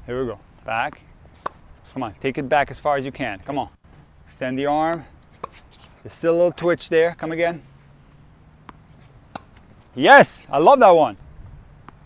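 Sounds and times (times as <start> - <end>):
tennis ball bouncing on court: 0.9 - 1.7, 5.3 - 5.9, 8.5 - 9.8
racket striking ball: 1.0 - 1.7, 5.4 - 6.0, 8.6 - 9.9.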